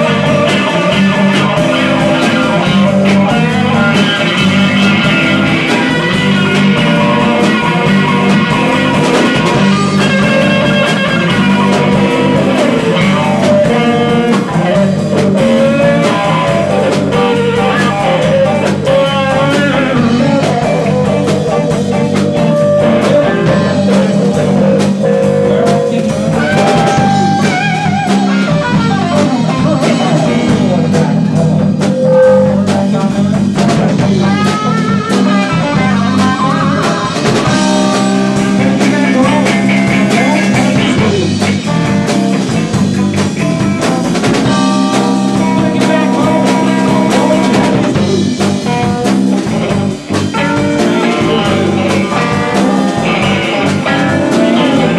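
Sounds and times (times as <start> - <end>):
blues rock band playing: 0.0 - 54.9
lead guitar with string bends: 0.0 - 54.9.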